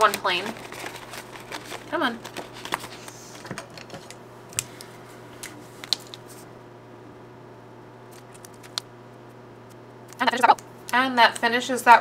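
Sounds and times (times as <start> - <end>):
clicks of plastic envelope handling: 0.0 - 6.2.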